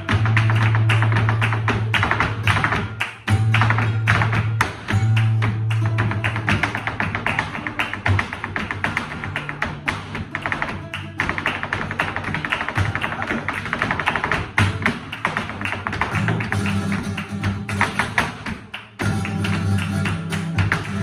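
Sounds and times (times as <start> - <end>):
dancer's footwork taps: 0.0 - 21.0
flamenco guitar playing: 0.0 - 21.0.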